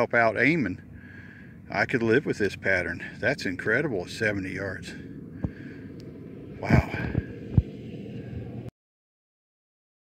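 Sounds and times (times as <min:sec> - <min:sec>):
wind buffeting microphone: 0:00.0 - 0:08.7
low thumps: 0:05.4 - 0:08.4.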